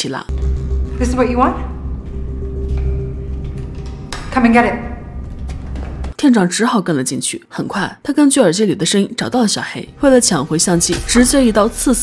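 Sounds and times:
low rumble of ambience: 0.3s - 6.2s.

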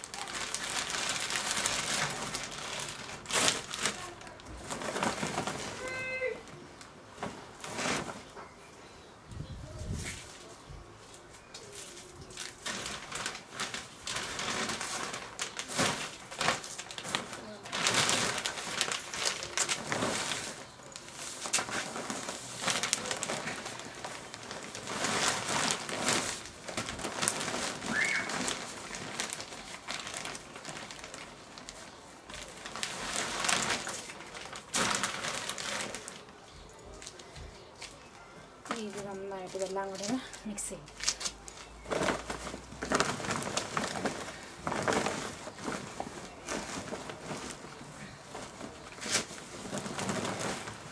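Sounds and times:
plastic bag and tarp rustling: 0.0s - 8.6s, 9.4s - 50.9s.

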